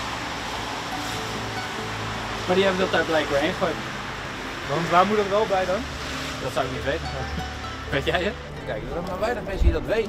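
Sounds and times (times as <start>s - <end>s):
outdoor street noise hiss: 0.0s - 10.0s
soft background music: 0.2s - 10.0s.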